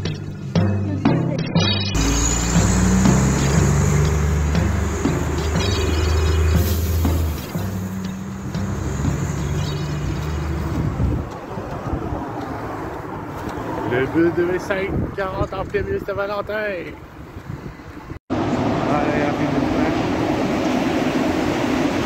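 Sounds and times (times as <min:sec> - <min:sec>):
music with singing: 0:00.0 - 0:11.2
bus diesel engine pulling away: 0:02.0 - 0:14.4.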